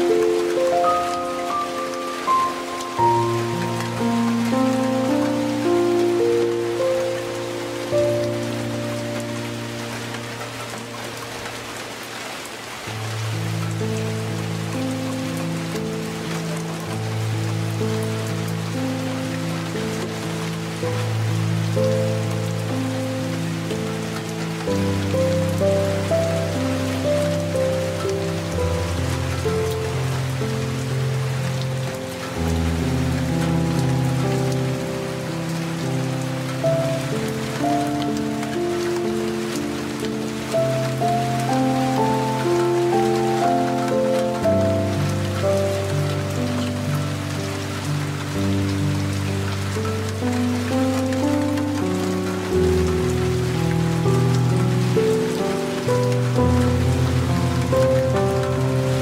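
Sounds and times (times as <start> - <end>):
light rain falling: 0.0 - 59.0
soft slow piano music: 0.0 - 59.0.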